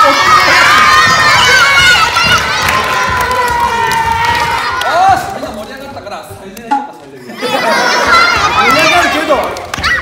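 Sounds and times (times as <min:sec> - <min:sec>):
children cheering and shouting: 0:00.0 - 0:05.2, 0:07.3 - 0:10.0.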